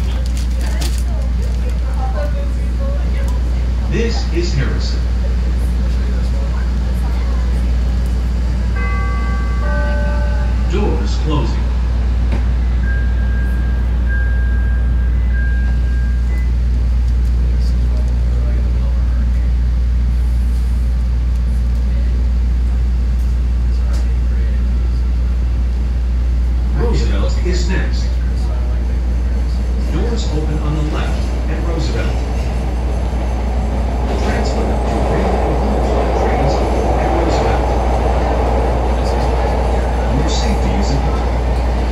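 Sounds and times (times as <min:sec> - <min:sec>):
subway train humming: 0:00.0 - 0:41.9.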